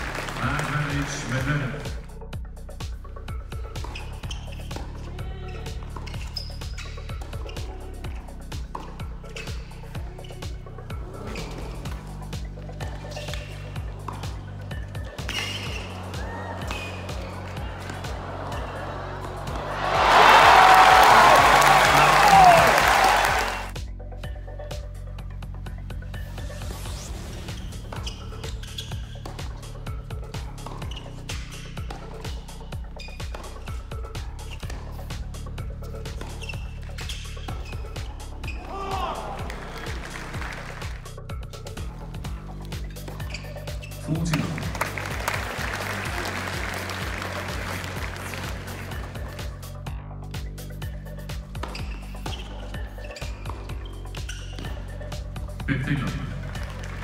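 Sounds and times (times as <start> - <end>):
crowd applauding and cheering: 0.0 - 2.0, 15.8 - 23.8, 38.8 - 41.0, 44.0 - 49.6, 55.7 - 57.0
background music: 0.0 - 57.0
racket hitting ball: 30.6 - 32.4, 33.2 - 33.8.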